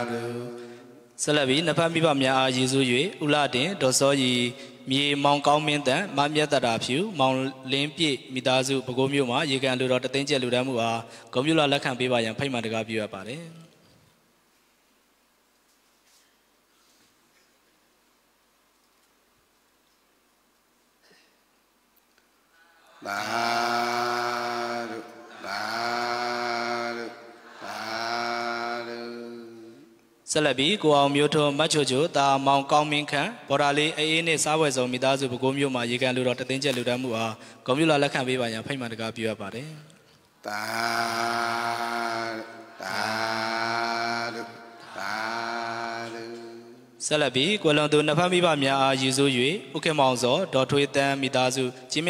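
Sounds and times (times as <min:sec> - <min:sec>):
man chanting long notes: 0:00.0 - 0:01.7, 0:22.9 - 0:30.0, 0:40.4 - 0:47.0.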